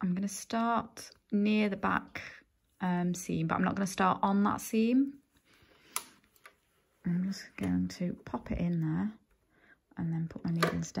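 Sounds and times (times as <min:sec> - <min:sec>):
person speaking: 0:07.0 - 0:09.2, 0:10.0 - 0:11.0.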